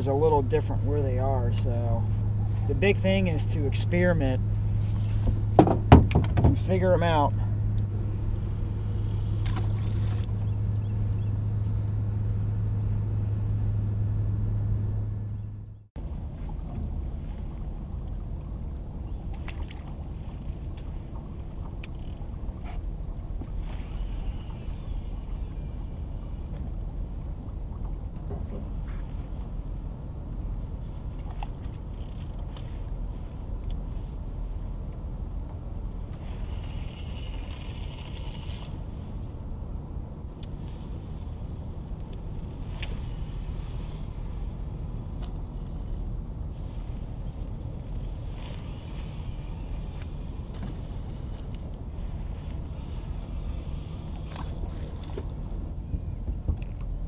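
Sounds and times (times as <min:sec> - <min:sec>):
river water moving around boat: 0:00.0 - 0:57.0
wind rumble: 0:00.0 - 0:57.0.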